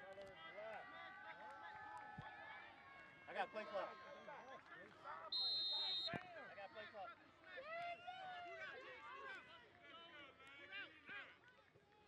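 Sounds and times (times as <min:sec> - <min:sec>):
whistle blast: 0:05.3 - 0:06.2.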